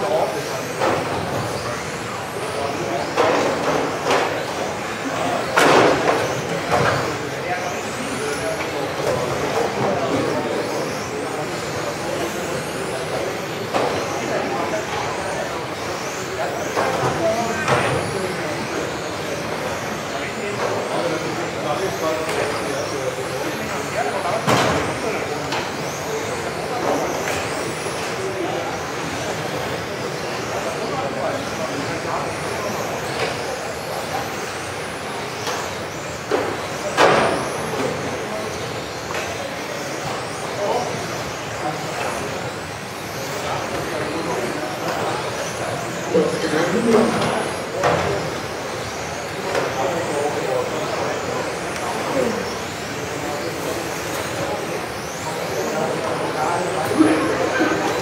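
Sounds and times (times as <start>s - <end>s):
radio-controlled car motors whining: 0.0s - 58.0s.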